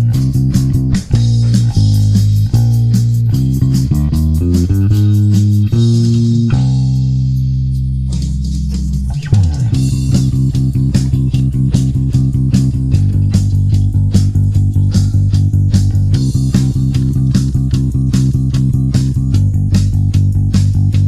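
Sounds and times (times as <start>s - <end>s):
drum track: 0.0s - 21.0s
electric bass playing: 0.0s - 21.0s.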